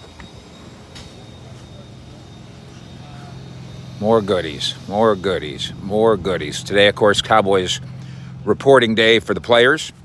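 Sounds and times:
faint outdoor background noise: 0:00.0 - 0:10.0
low mechanical motor hum: 0:00.0 - 0:10.0.

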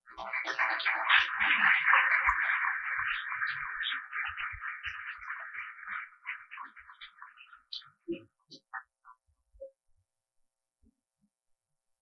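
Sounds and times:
audience applauding: 0:00.2 - 0:06.2.

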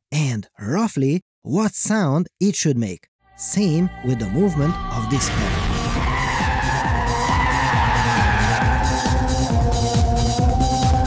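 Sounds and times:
car tyres squealing: 0:05.4 - 0:10.0
music with low pulsing beat: 0:07.0 - 0:11.0.

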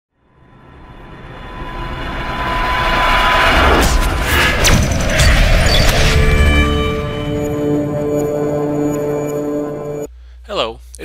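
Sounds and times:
whooshing riser: 0:00.2 - 0:10.1.

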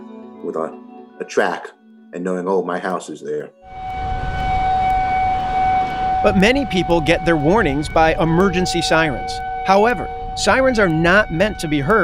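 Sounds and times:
warning siren steady tone: 0:03.6 - 0:12.0
low rumble: 0:03.7 - 0:12.0.

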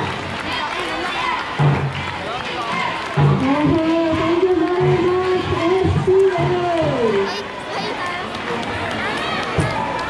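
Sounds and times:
crowd talking and calling out: 0:00.0 - 0:10.0.

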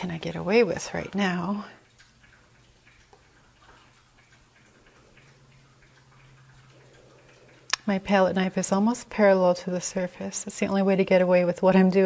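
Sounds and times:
low steady hum: 0:00.0 - 0:12.0
puppies lapping water: 0:00.0 - 0:12.0.

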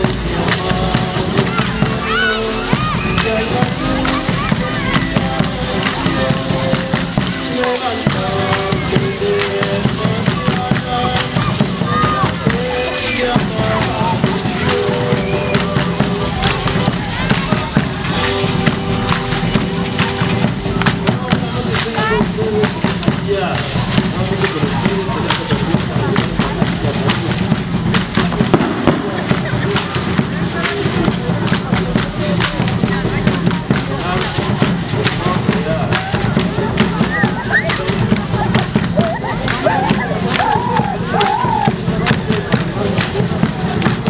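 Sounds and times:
crowd voices: 0:00.0 - 0:44.0
steady drumming: 0:00.0 - 0:44.0.

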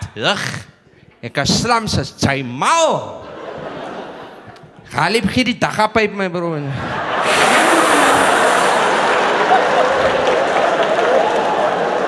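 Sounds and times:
audience laughing: 0:03.1 - 0:04.9, 0:06.6 - 0:12.0
audience clapping: 0:07.2 - 0:12.0.

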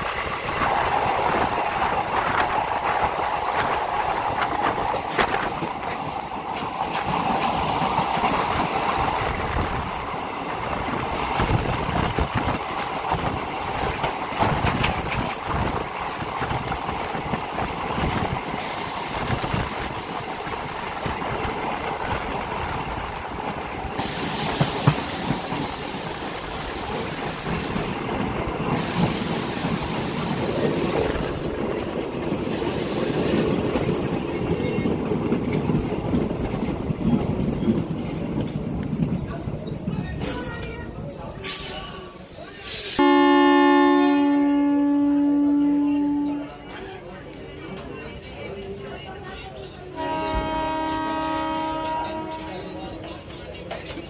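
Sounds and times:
train wheels rumbling on rails: 0:00.0 - 0:54.0
rail-joint clicks: 0:00.6 - 0:09.8, 0:11.4 - 0:31.4
high-pitched wheel squeals: 0:32.0 - 0:43.0.

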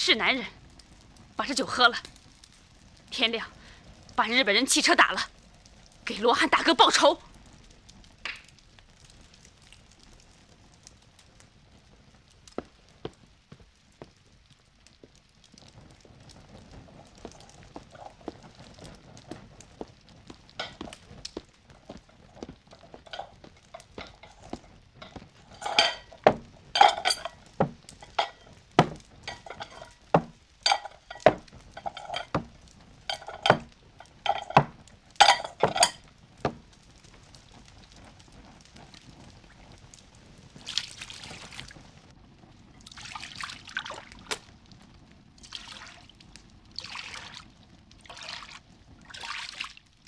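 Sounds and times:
bonfire crackling: 0:00.0 - 0:50.0
bowls knocking on wooden table: 0:25.6 - 0:32.5.

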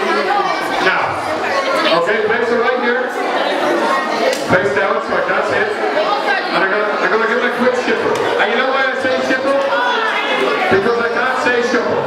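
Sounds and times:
many voices chattering: 0:00.0 - 0:12.0.

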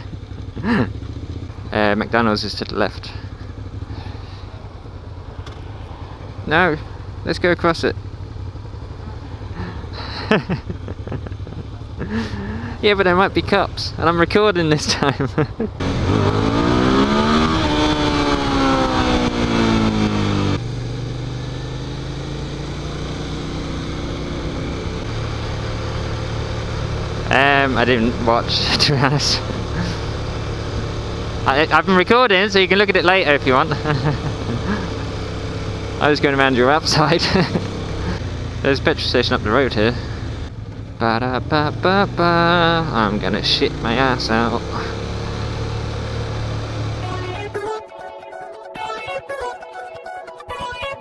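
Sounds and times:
wind and road noise: 0:00.0 - 0:47.3
motorcycle engines idling: 0:00.0 - 0:47.6.

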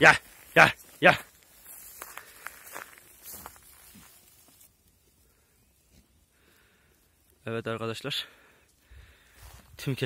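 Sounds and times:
footsteps through dry grass: 0:00.0 - 0:06.8, 0:08.4 - 0:10.0.

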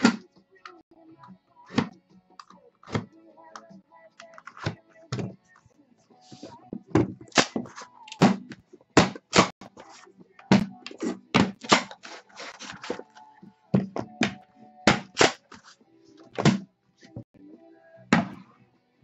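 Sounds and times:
boxes knocking on a desk: 0:16.4 - 0:16.7.

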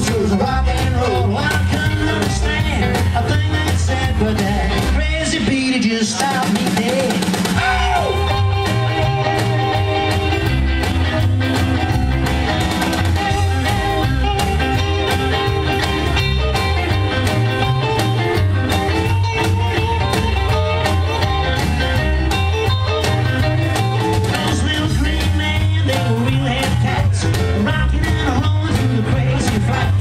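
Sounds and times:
double bass: 0:00.0 - 0:05.6, 0:07.6 - 0:30.0
drums: 0:00.0 - 0:30.0
electric guitar: 0:00.0 - 0:30.0
saxophone: 0:07.6 - 0:10.6, 0:12.9 - 0:18.0.

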